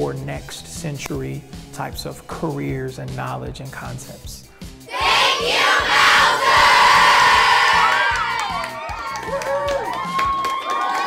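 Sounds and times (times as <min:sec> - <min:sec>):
children cheering and shouting: 0:04.9 - 0:11.0.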